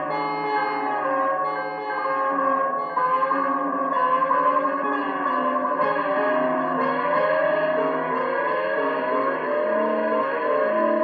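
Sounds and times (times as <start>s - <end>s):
electric guitar with echo: 0.0s - 11.0s.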